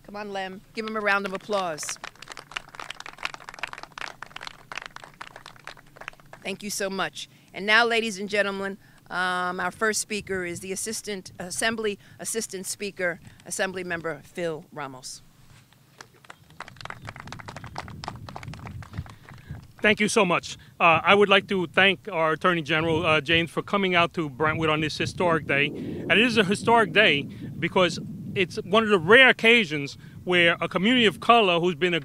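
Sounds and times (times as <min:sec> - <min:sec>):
small audience clapping: 0:00.8 - 0:06.5, 0:16.0 - 0:19.8.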